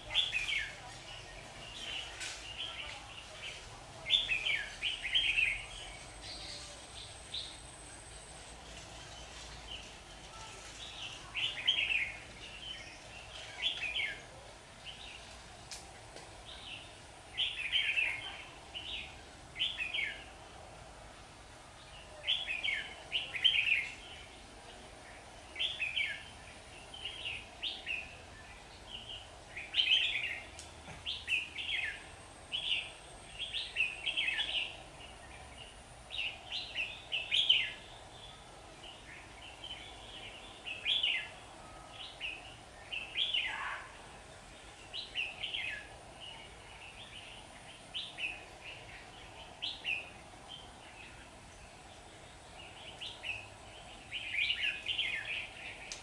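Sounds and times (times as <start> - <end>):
bulbuls singing whistled phrases: 0.0 - 9.9.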